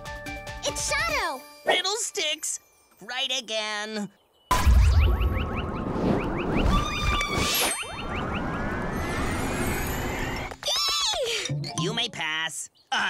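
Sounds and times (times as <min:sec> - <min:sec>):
cartoon whistle-like glides and whooshes: 0:04.6 - 0:10.6.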